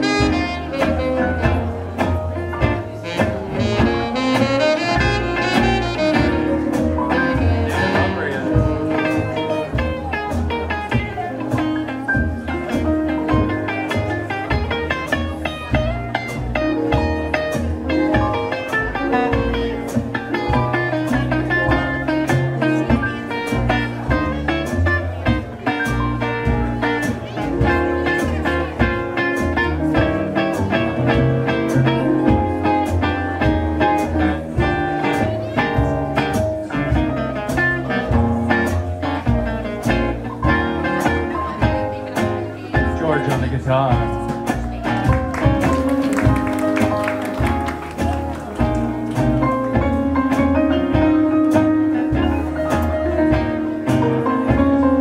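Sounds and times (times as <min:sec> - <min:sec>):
drums keeping a steady beat: 0:00.0 - 0:55.0
electric guitar solo: 0:00.0 - 0:55.0
upright bass: 0:00.0 - 0:55.0.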